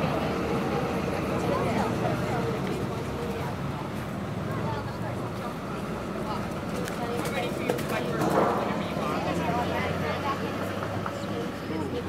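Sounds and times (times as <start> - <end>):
indistinct voices talking: 0.0 - 12.0
outdoor background noise: 0.0 - 12.0.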